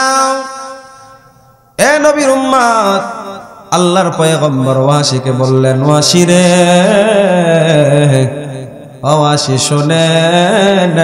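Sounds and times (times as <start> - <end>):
man chanting through microphone: 0.0 - 11.0.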